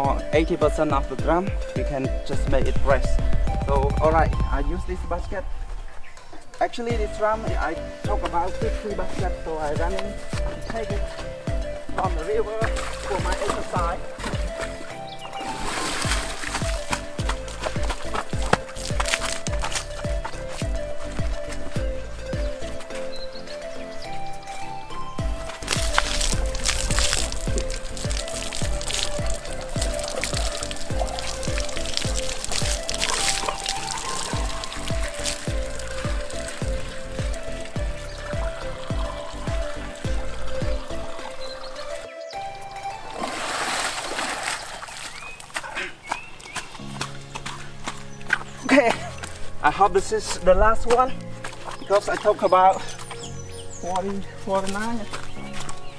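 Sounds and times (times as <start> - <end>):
background music with stepping melody: 0.0 - 55.9
water pouring and splashing into pipe: 7.0 - 21.8, 25.2 - 42.0, 43.1 - 45.7.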